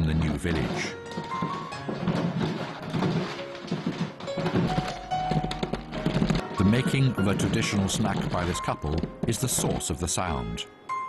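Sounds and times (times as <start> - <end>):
paddles thunking in wooden tub: 0.0 - 10.4
background music: 0.0 - 11.0.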